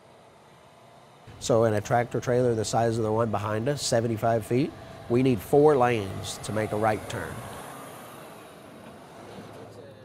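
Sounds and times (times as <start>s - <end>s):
cars driving past: 0.0s - 10.0s.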